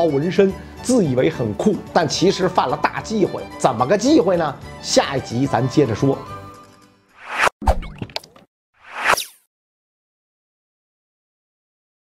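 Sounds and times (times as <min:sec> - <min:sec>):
background music: 0:00.0 - 0:07.1
whoosh: 0:07.2 - 0:07.5, 0:08.8 - 0:09.5
pop sound effect: 0:08.9 - 0:09.5.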